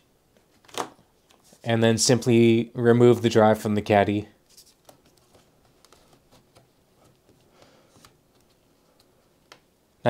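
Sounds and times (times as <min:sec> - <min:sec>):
faint clicks and taps: 0:04.8 - 0:09.7.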